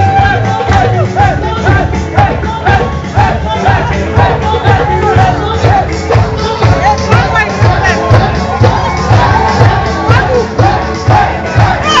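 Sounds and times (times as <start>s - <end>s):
crowd shouting: 0.0s - 12.0s
live band music: 0.0s - 12.0s
low drum beat: 0.0s - 12.0s.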